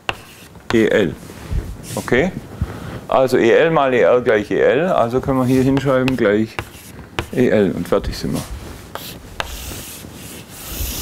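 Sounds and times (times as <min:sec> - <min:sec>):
chalk scraping on blackboard: 0:00.0 - 0:00.9, 0:04.8 - 0:07.6, 0:08.2 - 0:11.0
chalk tapping on board: 0:00.0 - 0:00.9, 0:05.6 - 0:07.5, 0:08.9 - 0:11.0.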